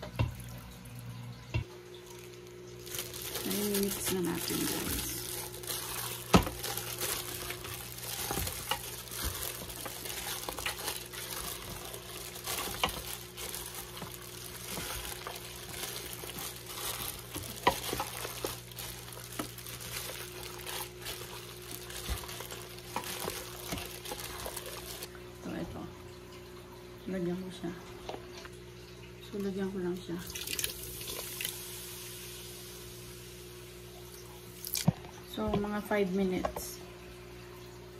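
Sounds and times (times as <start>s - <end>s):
squelching and crinkling: 1.7s - 25.1s.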